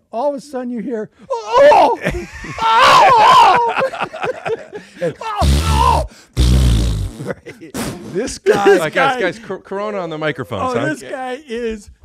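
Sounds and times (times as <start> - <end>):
man crying out: 1.3 - 3.9, 5.0 - 6.2
men laughing: 1.6 - 6.2, 7.1 - 9.5.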